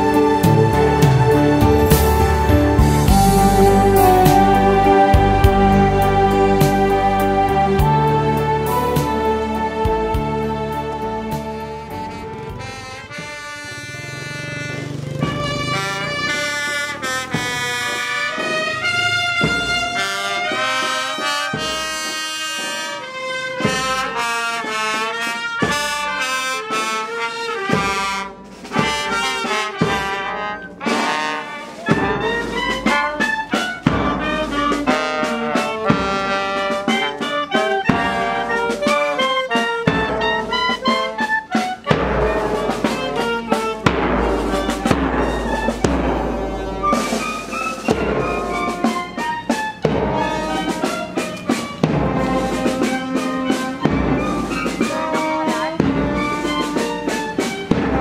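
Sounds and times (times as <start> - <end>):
bass drum beats: 0.0 - 13.4, 41.8 - 49.2, 49.8 - 55.0
brass marching band: 0.0 - 58.0.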